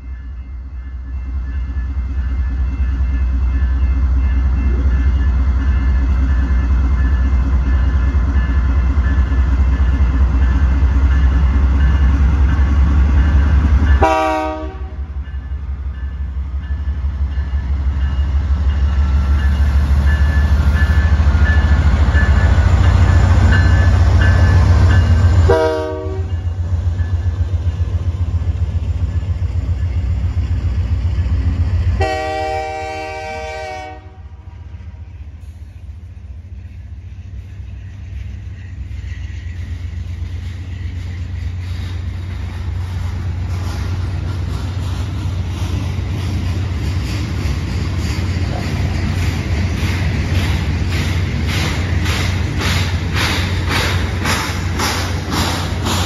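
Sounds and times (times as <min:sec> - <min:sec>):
diesel locomotive engines rumbling: 0:00.0 - 0:56.0
rail cars rolling: 0:00.0 - 0:56.0
train air horn blasts: 0:14.0 - 0:15.2, 0:25.4 - 0:26.4, 0:32.0 - 0:34.6.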